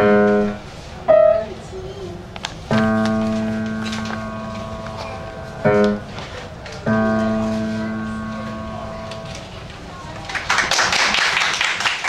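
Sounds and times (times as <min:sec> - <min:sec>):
low piano chord: 0:00.0 - 0:01.6, 0:02.7 - 0:06.2, 0:06.8 - 0:09.4.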